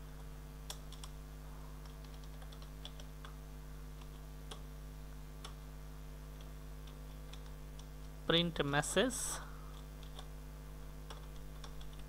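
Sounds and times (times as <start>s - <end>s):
low electrical hum: 0.0s - 12.0s
computer keyboard keystrokes: 0.7s - 1.2s, 1.8s - 3.4s, 6.4s - 8.1s, 9.7s - 10.3s, 11.0s - 12.0s.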